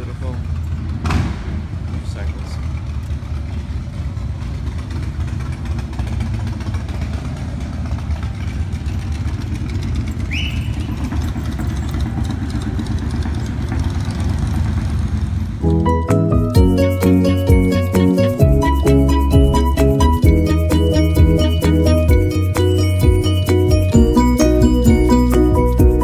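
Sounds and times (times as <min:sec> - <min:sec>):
motorcycle engine running: 0:00.0 - 0:26.0
music: 0:15.6 - 0:26.0.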